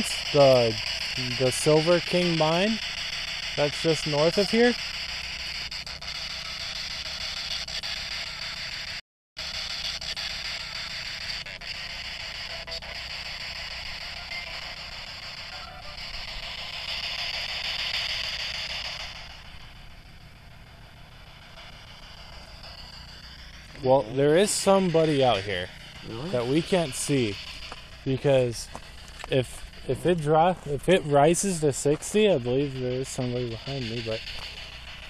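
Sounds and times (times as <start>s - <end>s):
steady high hiss: 0.0s - 4.9s, 13.6s - 35.0s.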